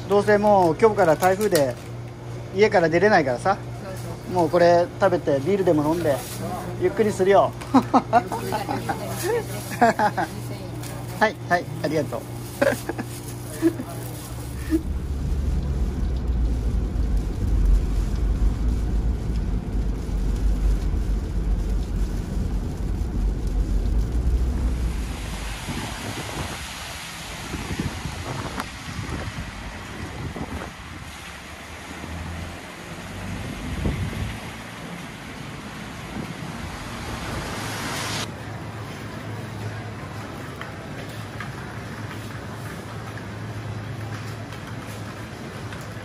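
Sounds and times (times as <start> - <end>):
traffic on a wet road: 0.0 - 2.0, 2.7 - 46.0
wind buffeting the microphone: 14.3 - 31.4, 33.3 - 34.6.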